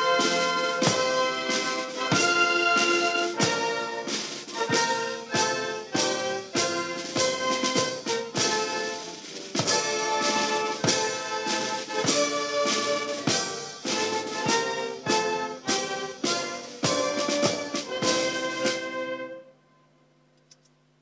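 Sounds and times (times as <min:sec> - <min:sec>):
loud percussive beat: 0:00.0 - 0:18.9
wind band playing brass music: 0:00.0 - 0:19.5.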